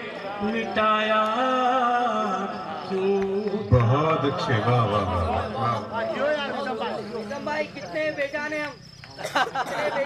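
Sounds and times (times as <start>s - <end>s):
man's voice over public address: 2.4s - 8.8s.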